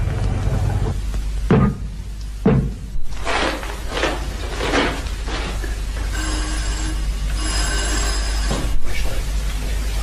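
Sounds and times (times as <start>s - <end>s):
electric bell ringing: 6.0s - 8.8s.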